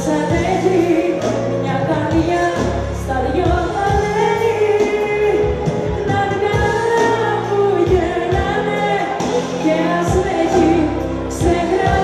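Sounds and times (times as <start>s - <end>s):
band playing: 0.0s - 12.0s
steady bass line: 0.0s - 12.0s
woman singing into a microphone: 0.0s - 12.0s.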